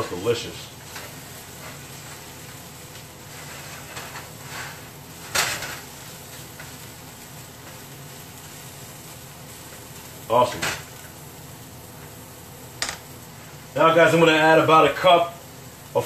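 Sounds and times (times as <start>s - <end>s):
vegetables sizzling in skillet: 0.0s - 16.0s
spatula scraping pan: 3.2s - 6.0s.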